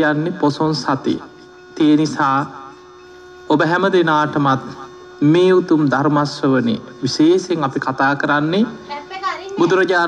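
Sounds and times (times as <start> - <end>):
man speaking: 0.0 - 2.8, 3.5 - 8.8, 9.6 - 10.0
steady electrical hum: 0.0 - 10.0.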